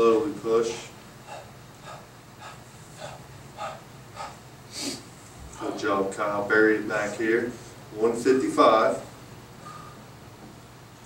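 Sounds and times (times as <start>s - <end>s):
steady low hum: 0.0s - 11.0s
man breathing under exertion: 1.2s - 5.1s, 9.6s - 10.1s.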